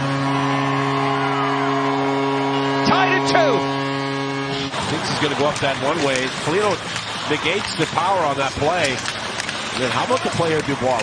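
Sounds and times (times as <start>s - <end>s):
arena goal horn: 0.0s - 6.8s
crowd noise: 0.0s - 11.0s.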